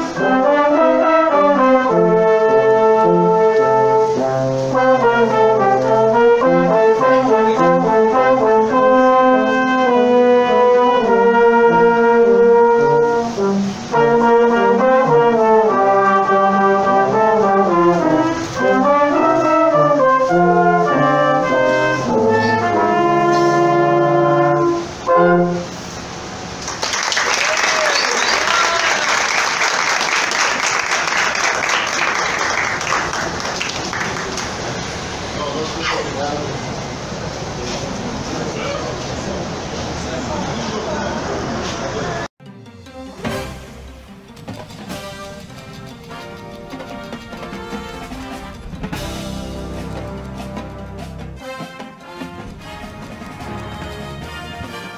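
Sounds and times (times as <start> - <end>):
brass quintet playing chords: 0.0 - 26.6, 42.2 - 54.9
applause: 26.6 - 34.9.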